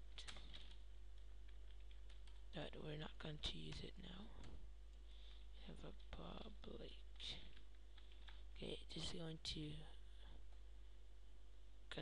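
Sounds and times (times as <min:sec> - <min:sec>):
low steady hum: 0:00.0 - 0:12.0
computer keyboard clicks: 0:00.2 - 0:00.8, 0:01.5 - 0:02.4.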